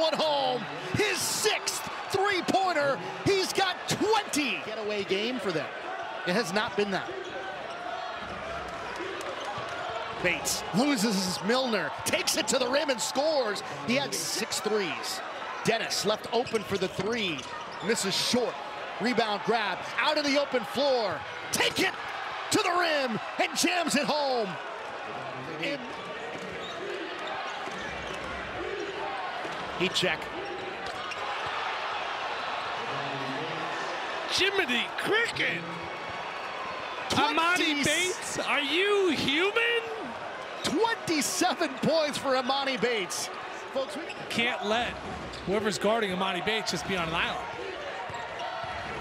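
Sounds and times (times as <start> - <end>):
crowd hum: 0.0 - 6.5
arena crowd noise: 0.0 - 49.0.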